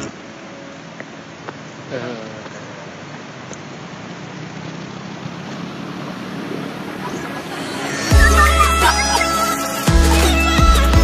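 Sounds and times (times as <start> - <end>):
steady outdoor rushing noise: 0.0 - 11.0.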